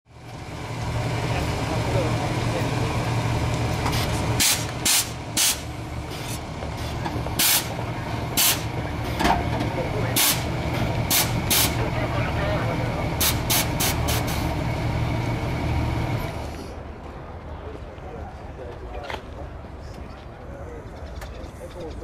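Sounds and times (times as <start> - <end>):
air suspension hissing: 3.8 - 9.3, 10.2 - 11.8.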